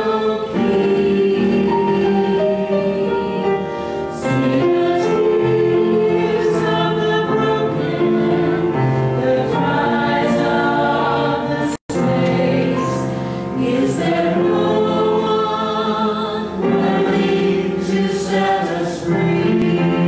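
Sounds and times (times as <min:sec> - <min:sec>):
church choir singing: 0:00.0 - 0:20.0
piano: 0:00.0 - 0:20.0.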